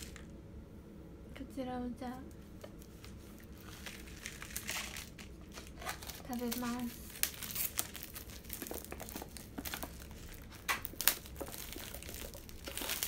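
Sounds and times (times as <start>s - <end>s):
plastic packaging rustling and tearing: 0.0s - 0.3s, 2.7s - 13.0s.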